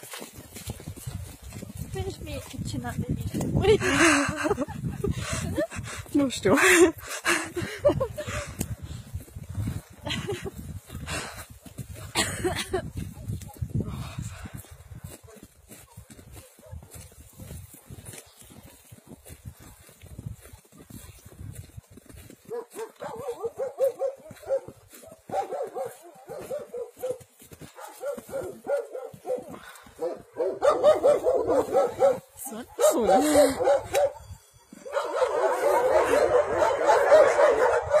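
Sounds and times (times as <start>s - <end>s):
footsteps in deep snow: 0.0s - 38.0s
dogs barking and yelping: 22.4s - 38.0s.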